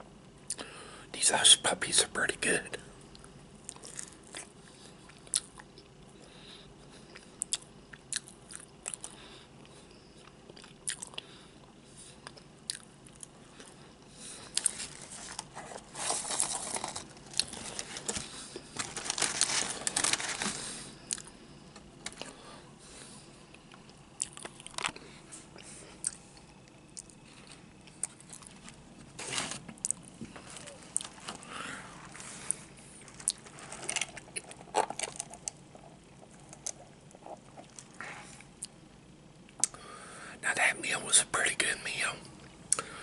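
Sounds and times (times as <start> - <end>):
chewing fried food: 3.1 - 21.3, 23.0 - 28.8, 32.4 - 38.8.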